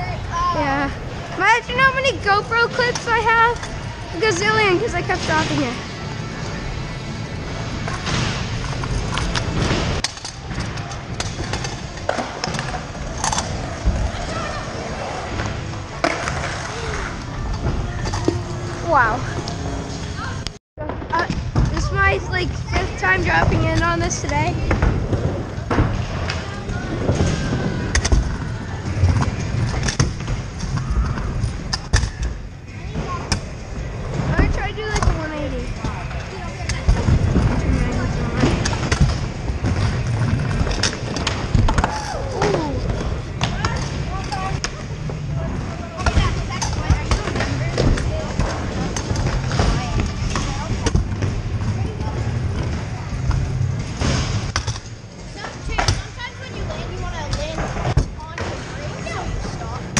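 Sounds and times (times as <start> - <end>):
scooter wheels rumbling: 0.0 - 59.9.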